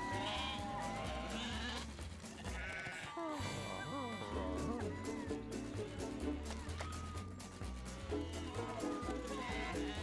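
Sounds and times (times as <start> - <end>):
background music: 0.0 - 10.0
cartoon sheep bleating: 8.2 - 10.0.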